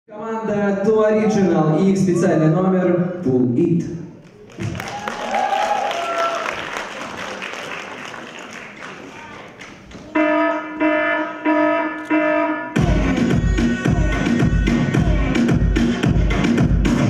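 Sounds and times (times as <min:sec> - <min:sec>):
audience applause: 0:04.4 - 0:09.9
dance music with pulsing synth: 0:12.8 - 0:17.0.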